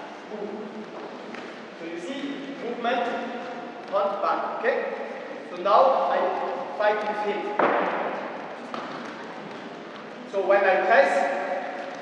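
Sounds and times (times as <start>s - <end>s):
echoing hall background noise: 0.0s - 12.0s.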